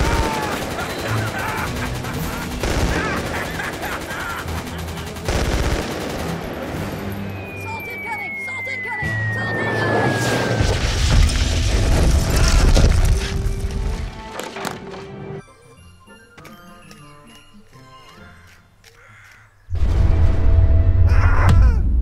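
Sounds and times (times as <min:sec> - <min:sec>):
gunfire crackling: 0:00.0 - 0:07.2
music: 0:00.0 - 0:22.0
thin falling whistle: 0:07.3 - 0:10.8.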